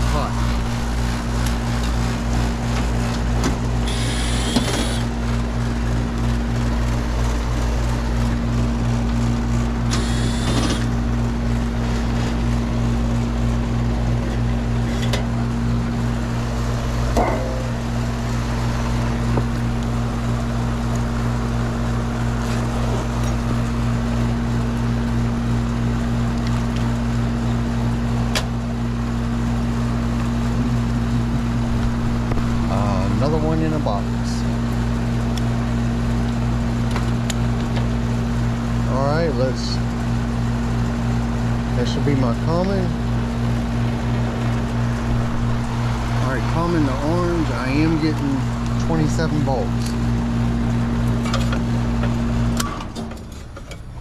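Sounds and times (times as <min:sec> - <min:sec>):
low electrical hum: 0:00.0 - 0:54.0
cordless screwdriver running: 0:03.8 - 0:05.1, 0:09.9 - 0:10.9.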